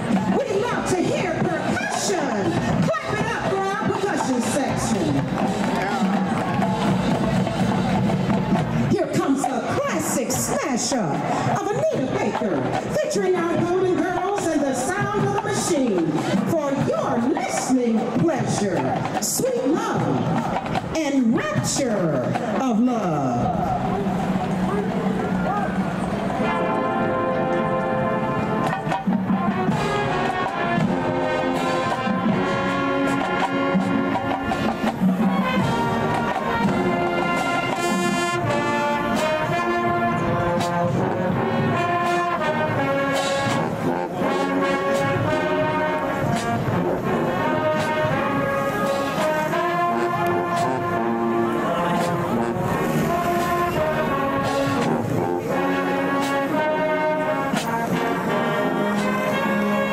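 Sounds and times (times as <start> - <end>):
marching band brass chords: 0.0 - 59.9.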